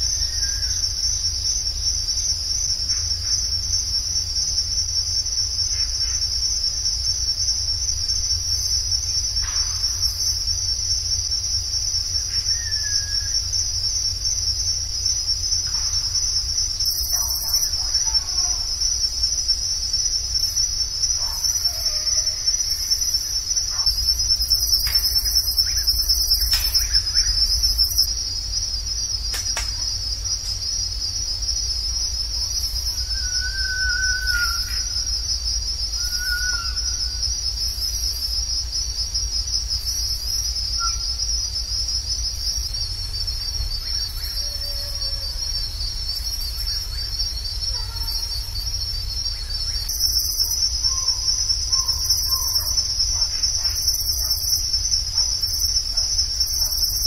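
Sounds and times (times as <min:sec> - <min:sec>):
high-pitched insect trill: 0:00.0 - 0:57.0.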